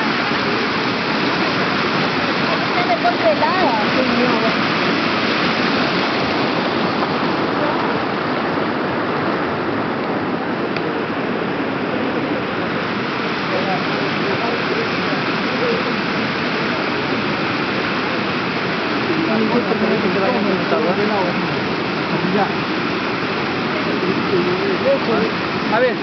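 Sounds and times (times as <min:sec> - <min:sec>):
faint voices: 0:00.0 - 0:26.0
stream water rushing: 0:00.0 - 0:26.0.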